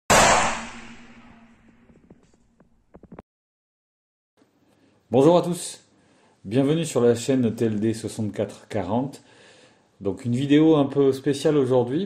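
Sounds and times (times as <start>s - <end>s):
loud bang sound effect: 0.1s - 1.9s.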